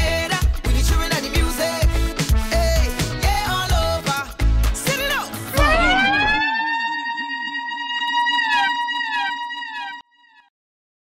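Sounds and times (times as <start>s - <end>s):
music bass and beat: 0.0s - 9.8s
low warble: 5.5s - 10.0s
electronic siren-style tones: 5.5s - 10.5s.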